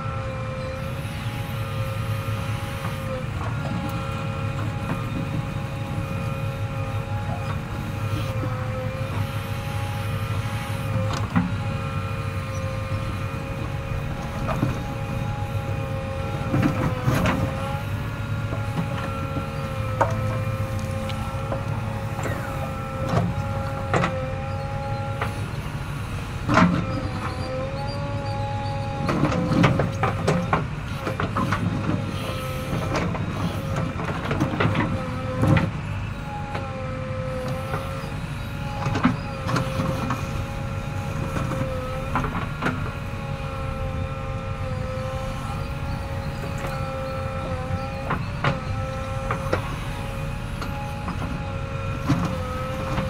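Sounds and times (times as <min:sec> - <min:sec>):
diesel engine running: 0:00.0 - 0:53.0
high hydraulic whine: 0:00.0 - 0:53.0.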